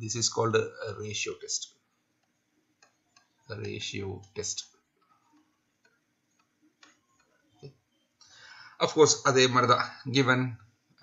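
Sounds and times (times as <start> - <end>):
stylus tapping on tablet screen: 2.1 - 3.5, 4.2 - 7.8.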